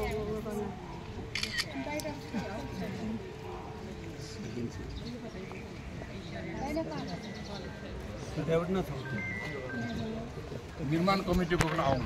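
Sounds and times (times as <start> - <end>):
crowd talking: 0.0 - 12.0
camera shutter clicks: 1.3 - 2.1.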